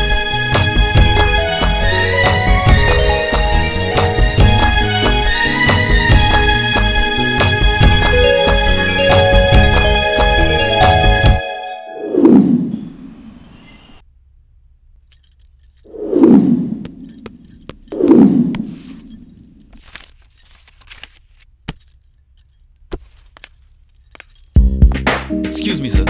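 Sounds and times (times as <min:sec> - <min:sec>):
light metallic jingling clinks: 0:15.0 - 0:16.1, 0:16.9 - 0:18.0, 0:18.8 - 0:21.0, 0:21.7 - 0:24.7.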